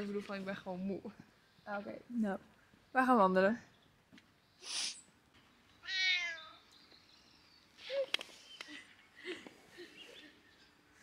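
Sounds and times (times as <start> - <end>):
cat meowing: 5.8 - 6.6.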